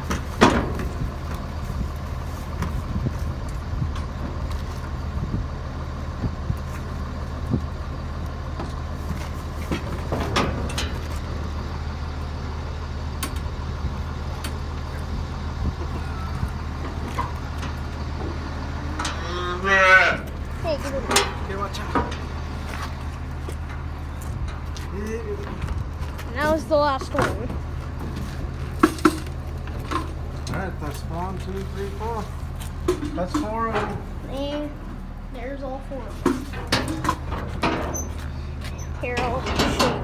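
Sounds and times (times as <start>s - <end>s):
low engine hum: 0.0s - 40.0s
calf bawling: 19.0s - 20.4s.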